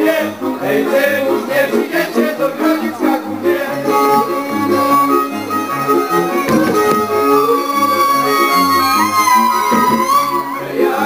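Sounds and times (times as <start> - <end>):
fiddles playing melody: 0.0 - 11.0.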